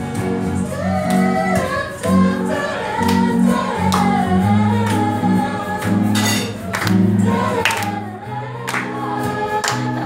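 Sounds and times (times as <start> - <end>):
group of voices singing: 0.0 - 10.0
strummed acoustic guitar: 0.0 - 10.0.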